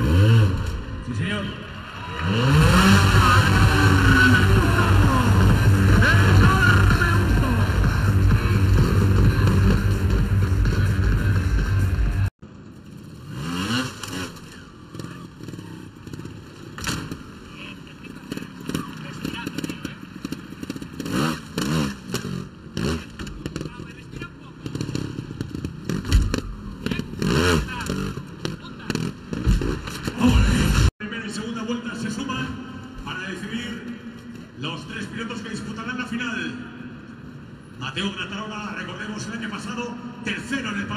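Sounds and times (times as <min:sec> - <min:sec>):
arena crowd noise: 0:00.0 - 0:12.3, 0:14.3 - 0:20.9, 0:22.5 - 0:40.9
motorcycle engine revving: 0:00.0 - 0:30.9.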